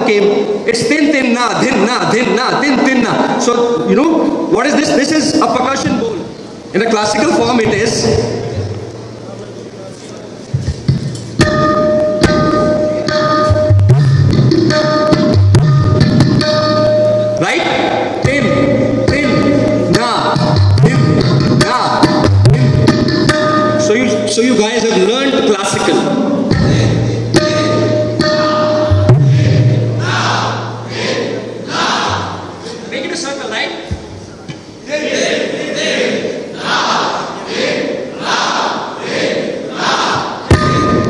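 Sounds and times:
tabla deep bass strokes: 10.6s - 17.1s, 26.5s - 30.9s
amplified drum hits: 10.6s - 24.8s, 25.7s - 32.6s, 40.2s - 41.0s
deep booming low note: 26.5s - 30.8s.

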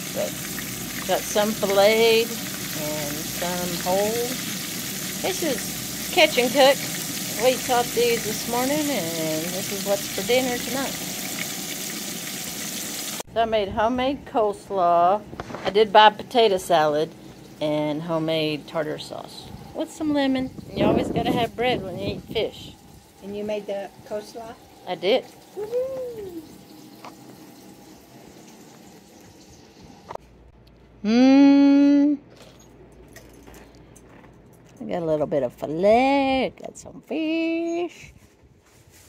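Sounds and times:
fish frying in hot oil: 0.0s - 13.3s, 16.6s - 18.6s, 20.2s - 29.8s.

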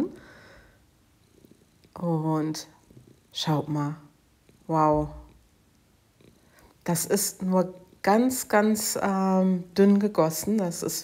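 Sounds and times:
soft breath: 0.1s - 1.7s.

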